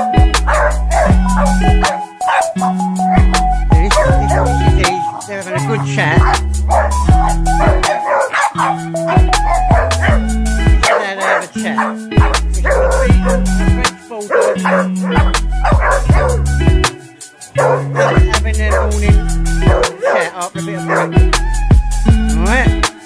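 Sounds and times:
music with deep bass: 0.0 - 23.0
dog vocalizing in play: 0.4 - 3.2, 3.9 - 16.7, 17.4 - 21.4.

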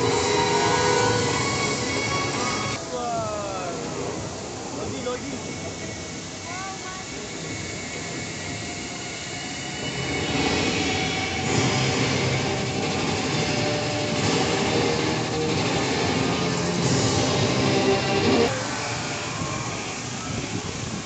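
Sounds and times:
fountain water jets rushing: 0.0 - 21.0.

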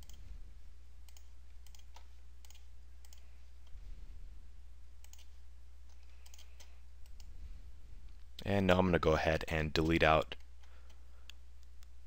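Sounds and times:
computer mouse clicks: 0.0 - 0.2, 1.1 - 3.8, 5.0 - 7.3
steady low hum: 0.0 - 12.0.

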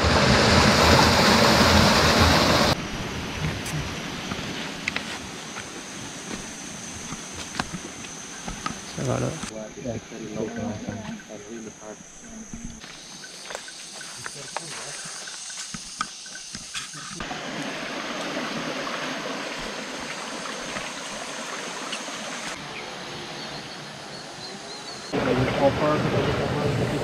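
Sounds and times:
stream running over rocks: 0.0 - 9.6, 12.6 - 27.0
insect drone: 0.0 - 27.0.

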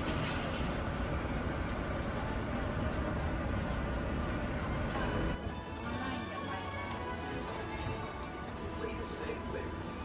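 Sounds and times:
monorail rumbling: 0.0 - 10.0.

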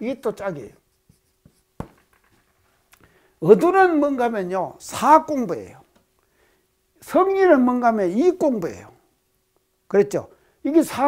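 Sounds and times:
faint steady hum: 0.0 - 11.0
marker writing on whiteboard: 0.8 - 2.8.

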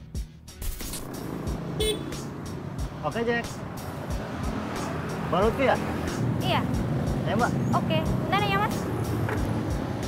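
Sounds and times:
background music with beat: 0.0 - 10.0
motor scooters in traffic: 1.0 - 10.0
horn toot: 1.8 - 2.3.

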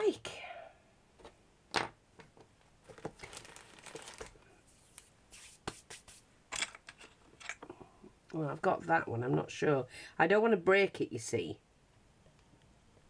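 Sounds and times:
craft tools rustling and clicking: 6.5 - 7.9.

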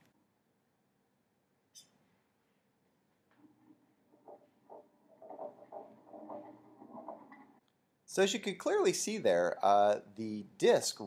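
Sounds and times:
objects rolling on a benchtop: 3.3 - 7.6
small irregular knocks: 3.3 - 7.6.

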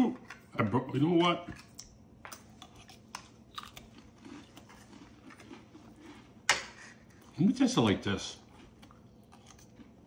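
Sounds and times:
person chewing with crunching: 1.6 - 10.0.

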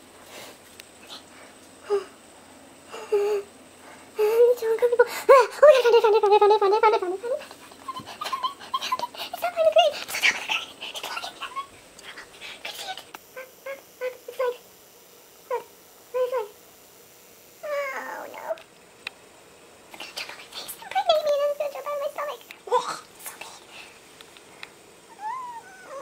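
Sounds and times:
woman's high squeaky whimpers: 25.1 - 26.0.

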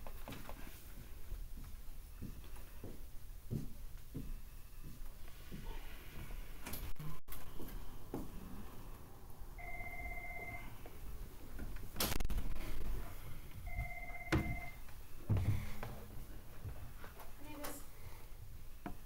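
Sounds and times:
electronic beep: 9.6 - 10.6.

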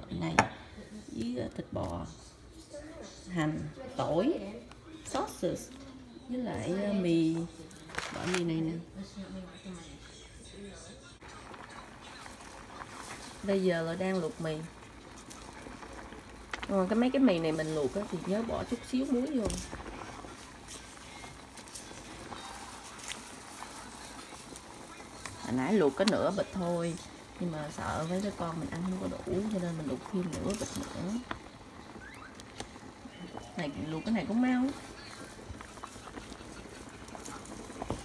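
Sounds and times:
water boiling in a pot: 0.0 - 10.1, 10.8 - 38.0.

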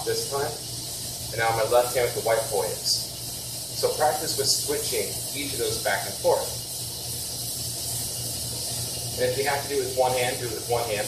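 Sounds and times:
high hiss: 0.0 - 11.0.

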